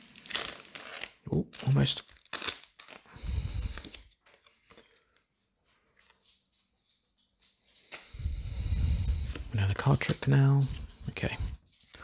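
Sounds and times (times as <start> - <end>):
trading cards rustling: 0.0 - 5.3.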